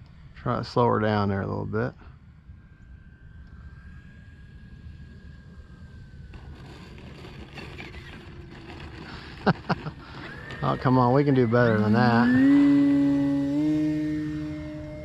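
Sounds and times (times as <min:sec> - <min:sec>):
electric motor whine: 0:02.8 - 0:15.0
wind on microphone: 0:03.6 - 0:15.0.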